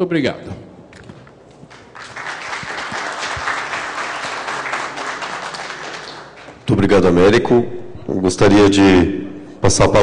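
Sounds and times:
audience applauding: 0:01.7 - 0:06.6.

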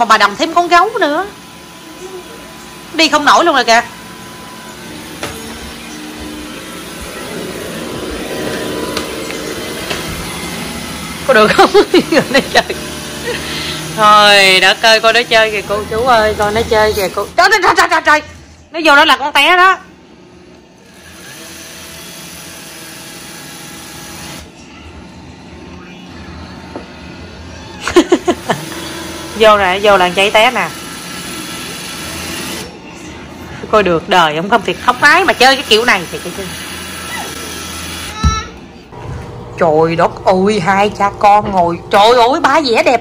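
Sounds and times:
robot vacuum motor humming: 0:00.4 - 0:17.3, 0:27.2 - 0:32.8, 0:34.5 - 0:38.3.

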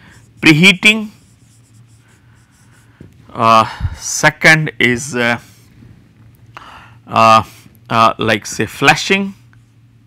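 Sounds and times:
marker pen writing on whiteboard: 0:00.2 - 0:03.1.

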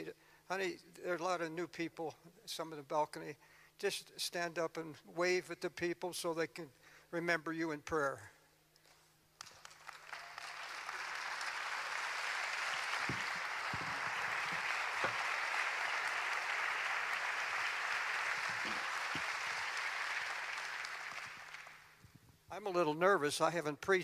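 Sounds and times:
congregation applauding: 0:09.4 - 0:22.1.

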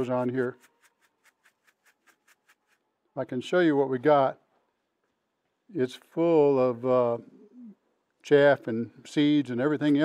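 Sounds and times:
seeds rustling in plastic sifter: 0:00.0 - 0:02.9.

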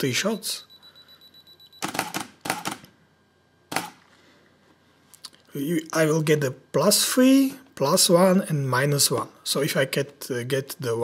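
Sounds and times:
high camera beep: 0:00.5 - 0:02.8, 0:03.7 - 0:04.0
camera shutter clacks: 0:01.8 - 0:02.9, 0:03.7 - 0:04.0.

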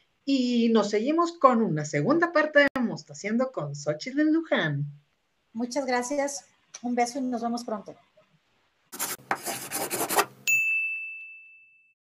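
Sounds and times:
scratchy swish: 0:09.0 - 0:10.4
bright high ding: 0:10.4 - 0:11.9.

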